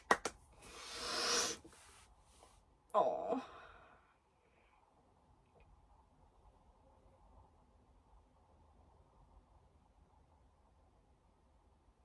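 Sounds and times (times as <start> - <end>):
hand claps: 0.0 - 0.5
breathy hiss: 0.6 - 2.1.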